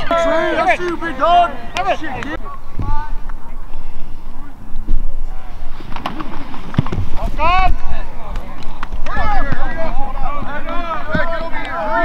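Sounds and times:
people shouting and cheering: 0.0 - 3.2, 8.9 - 12.0.

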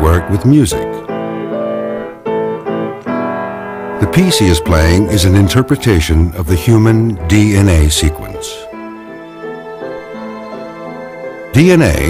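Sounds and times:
piano playing slow melody: 0.0 - 12.0.

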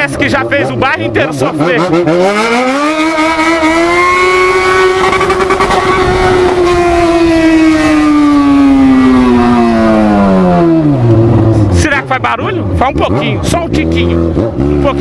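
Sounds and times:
motorcycle engine revving: 0.0 - 15.0.

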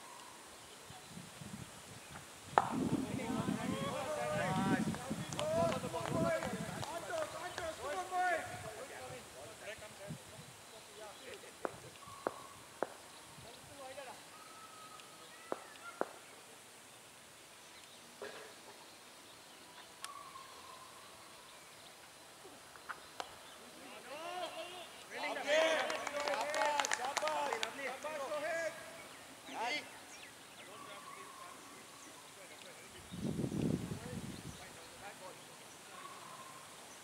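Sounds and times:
players calling across field: 2.6 - 10.0, 23.6 - 32.8.

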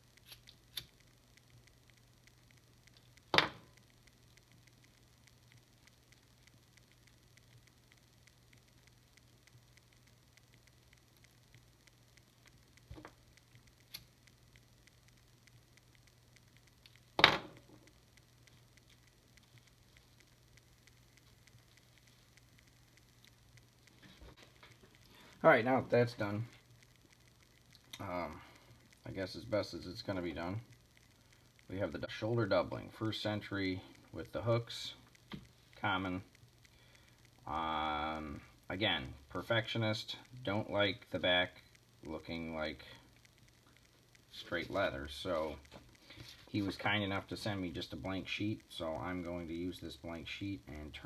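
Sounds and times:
faint low hum: 0.0 - 51.0
plastic parts ticking on desk: 0.0 - 51.0
sharp clicks: 0.0 - 51.0.

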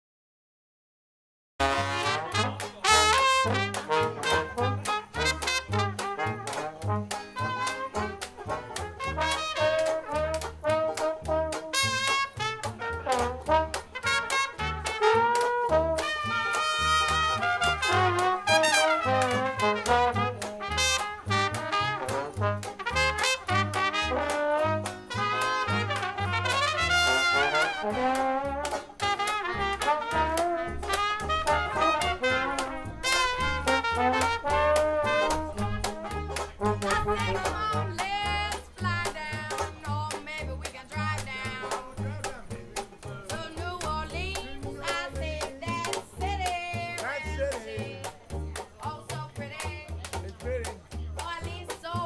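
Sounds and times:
trumpets and trombone melody: 1.6 - 49.7
plucked upright bass: 1.6 - 52.0.

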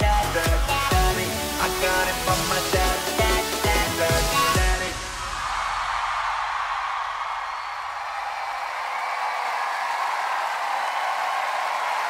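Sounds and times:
audience cheering and applauding: 2.7 - 12.0.

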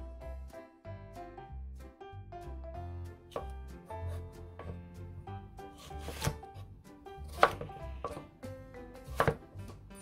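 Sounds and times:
knife cutting on wooden board: 3.3 - 4.8, 5.6 - 8.3, 9.0 - 9.6.

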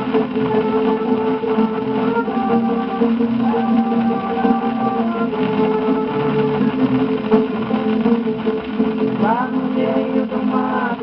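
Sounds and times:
plucked guitar ensemble music: 0.0 - 11.0
record surface hiss: 0.0 - 11.0.

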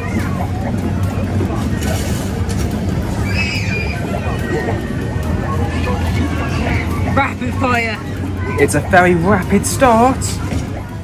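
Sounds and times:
arcade machine low rumble: 0.0 - 11.0
background chatter: 0.0 - 11.0.

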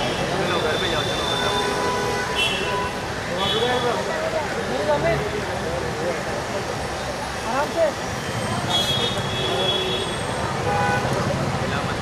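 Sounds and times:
crowd chatter: 0.0 - 12.0
road traffic rumble: 0.0 - 12.0.

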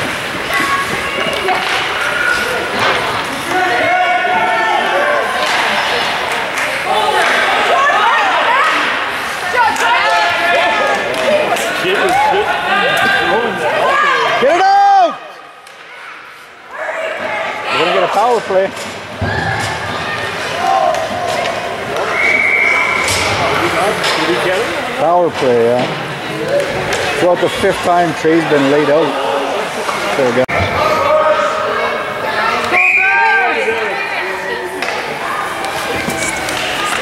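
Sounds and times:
spectators talking and calling out: 0.0 - 37.0
hockey sticks and puck knocking: 35.6 - 37.0.

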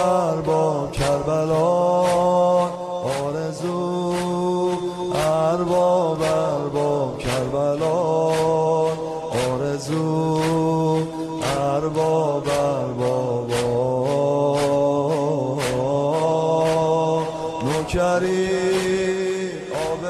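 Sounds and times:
beat of sharp strikes: 0.0 - 20.0
man chanting a lament: 0.0 - 20.0.

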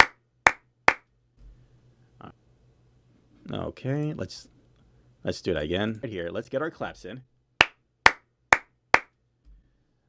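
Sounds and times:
sharp hand claps: 0.0 - 1.1, 7.6 - 9.1.

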